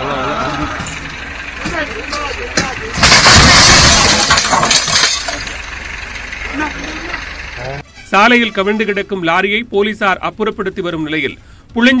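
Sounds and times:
lorry crashing onto road: 0.5s - 6.4s.

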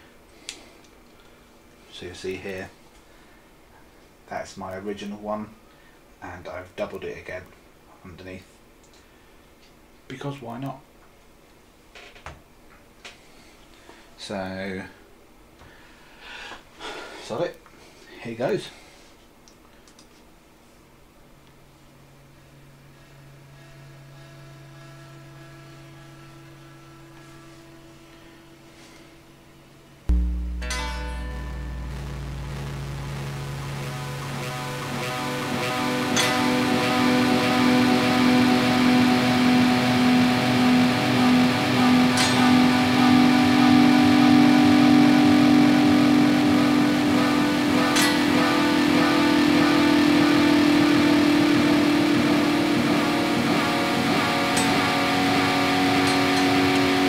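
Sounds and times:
guitar amp mains hum: 29.6s - 57.0s
faint higher tones: 30.1s - 47.6s.

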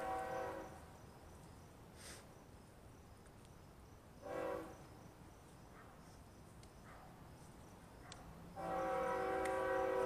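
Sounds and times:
locomotive air horn blast: 0.0s - 0.6s, 4.2s - 4.7s, 8.6s - 10.0s.

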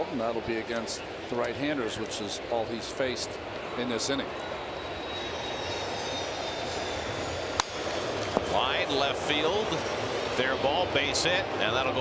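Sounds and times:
ballpark ambience rush: 0.0s - 12.0s
faint high whine: 3.8s - 12.0s.

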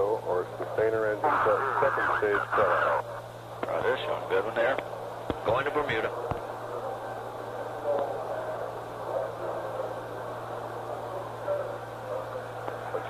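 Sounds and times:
faint unintelligible radio voices: 0.0s - 13.0s
radio hiss: 0.0s - 13.0s
steady hum: 0.0s - 13.0s.

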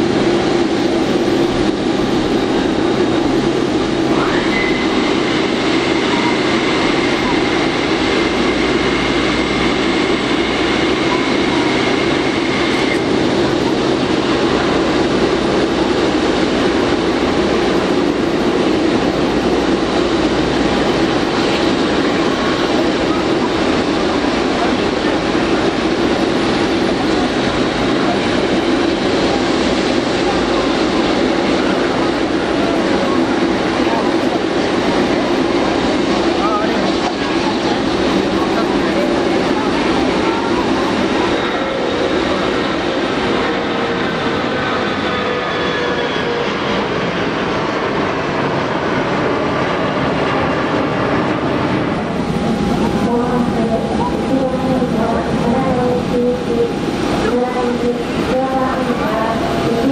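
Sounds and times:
jet engines rushing whine: 0.0s - 59.9s.

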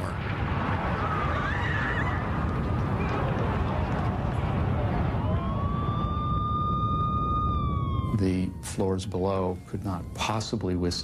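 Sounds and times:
dense low rumble: 0.0s - 11.0s
emergency vehicle siren wailing: 0.9s - 11.0s.

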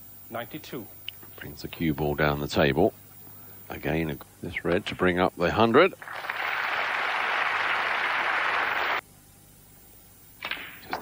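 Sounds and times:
snooker balls clicking: 10.4s - 11.0s.

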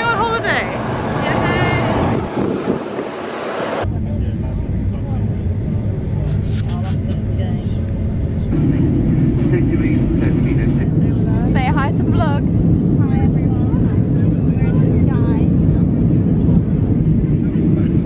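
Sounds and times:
jet engine rumble in cabin: 0.3s - 18.0s
person speaking: 6.2s - 7.3s.

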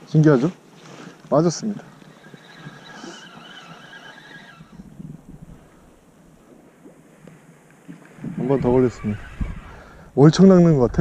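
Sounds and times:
fishing reel whine: 1.6s - 6.0s, 8.2s - 10.0s.

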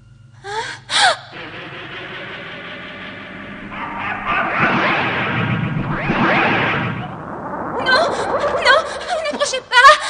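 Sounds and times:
noisy rush: 1.3s - 9.7s.

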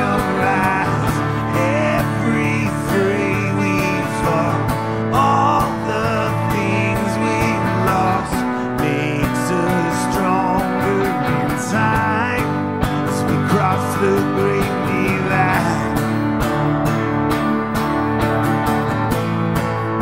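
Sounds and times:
acoustic guitar strummed: 0.0s - 20.0s
electric guitar lead lines: 0.0s - 20.0s.

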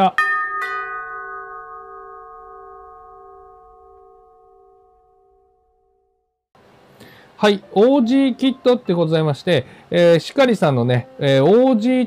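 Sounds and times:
bell-like chime ringing: 0.0s - 6.2s.

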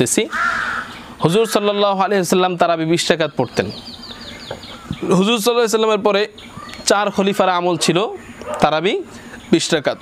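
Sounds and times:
man speaking: 0.0s - 0.3s, 1.2s - 3.8s, 5.0s - 10.0s.

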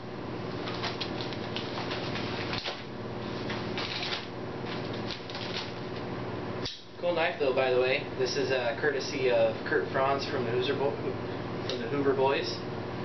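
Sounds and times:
padded envelope tearing: 0.5s - 5.9s
paper crinkling and rustling: 0.5s - 6.0s.

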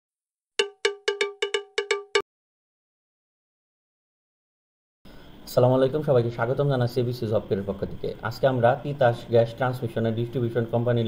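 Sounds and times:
cowbell strikes: 0.6s - 2.2s.

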